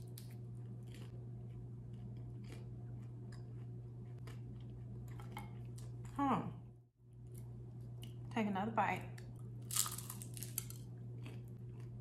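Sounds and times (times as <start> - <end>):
person chewing crunchy food: 0.0 - 6.2, 9.4 - 12.0
steady low hum: 0.0 - 12.0.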